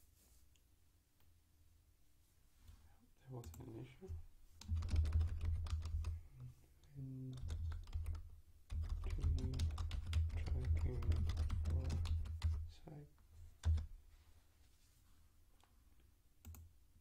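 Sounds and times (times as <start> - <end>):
typing on computer keyboard: 4.6 - 6.2, 7.3 - 12.7, 13.6 - 13.9.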